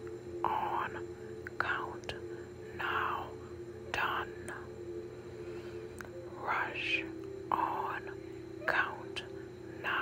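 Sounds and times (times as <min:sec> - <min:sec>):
person whispering: 0:00.4 - 0:04.7, 0:06.0 - 0:10.0.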